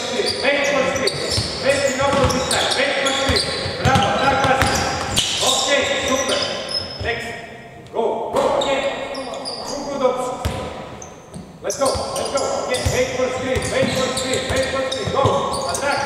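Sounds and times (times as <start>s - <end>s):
sneakers squeaking: 0.0s - 16.0s.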